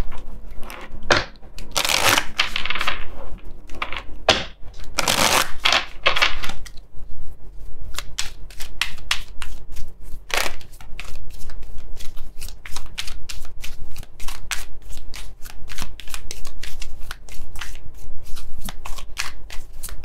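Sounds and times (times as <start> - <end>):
cards being shuffled: 0.0 - 6.8, 7.9 - 20.0.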